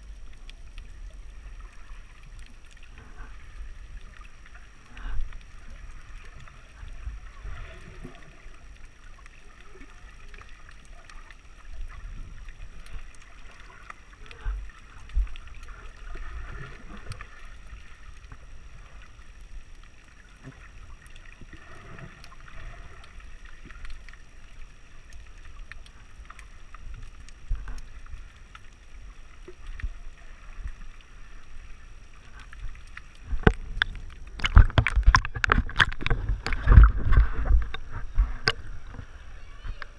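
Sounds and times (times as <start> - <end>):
muffled underwater rumble: 0.0 - 39.9
water splashing and sloshing: 0.0 - 39.9.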